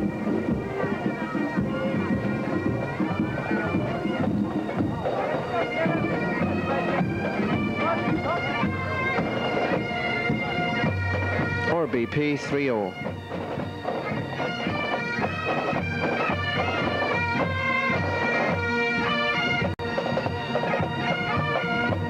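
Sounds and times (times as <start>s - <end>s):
bagpipe drones: 0.0s - 22.0s
bagpipes playing a tune: 0.0s - 22.0s.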